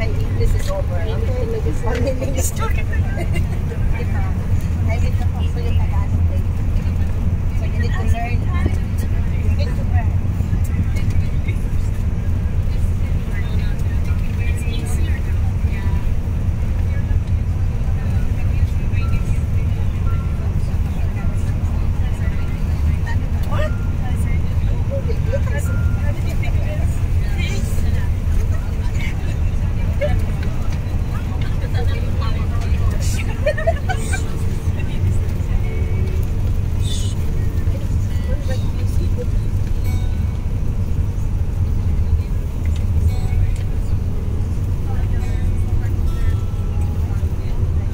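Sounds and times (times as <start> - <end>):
bus engine and road rumble: 0.0 - 47.9
faint scattered voices: 0.0 - 47.9.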